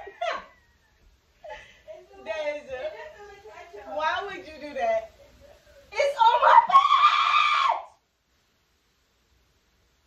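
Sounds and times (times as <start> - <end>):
woman screaming: 6.1 - 8.0.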